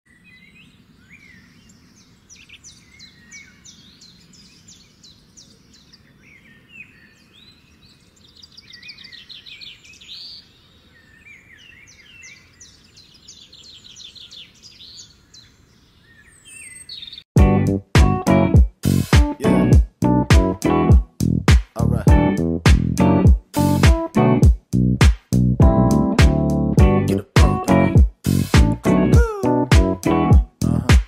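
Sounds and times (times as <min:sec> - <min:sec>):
small birds chirping: 0:00.1 - 0:17.3.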